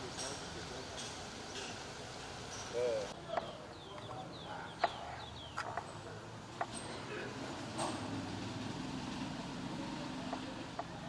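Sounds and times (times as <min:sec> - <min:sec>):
birds chirping: 0:01.4 - 0:08.2.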